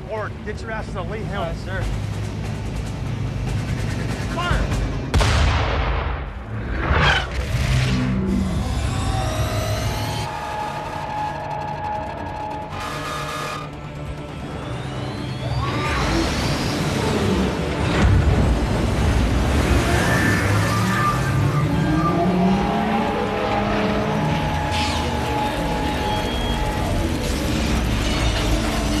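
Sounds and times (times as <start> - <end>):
dramatic film score: 0.0 - 29.0
boom: 5.1 - 7.8
sci-fi mechanical effects: 6.4 - 29.0.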